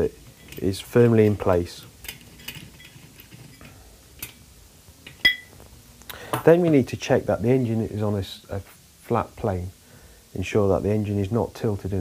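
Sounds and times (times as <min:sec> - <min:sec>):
ringing metal clink: 0:05.2 - 0:05.5.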